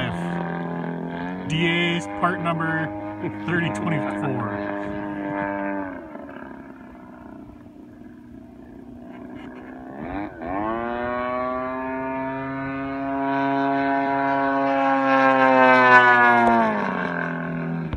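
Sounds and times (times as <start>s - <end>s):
model airplane propeller drone: 0.0s - 17.9s.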